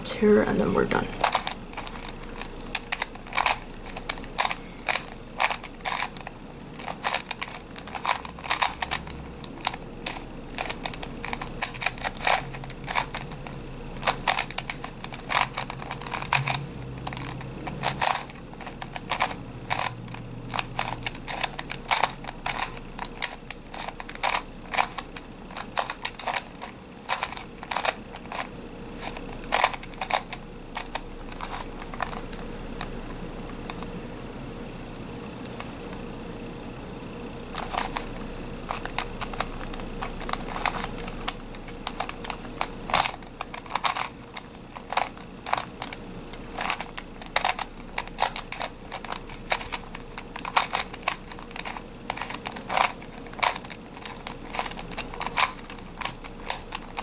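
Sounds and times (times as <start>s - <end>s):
plastic puzzle clicking: 1.2s - 32.9s, 38.7s - 57.0s.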